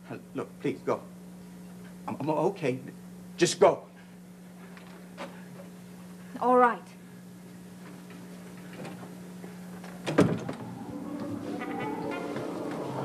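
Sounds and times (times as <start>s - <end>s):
steady low hum: 0.0s - 13.0s
music cue: 10.6s - 13.0s.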